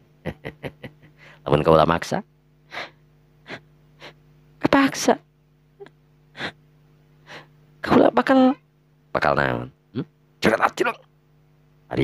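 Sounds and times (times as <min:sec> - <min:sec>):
soft breath: 0:07.2 - 0:07.6.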